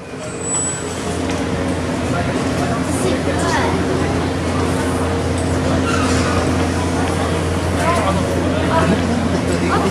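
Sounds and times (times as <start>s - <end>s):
electric train humming: 0.0s - 9.9s
faint voices: 0.1s - 9.9s.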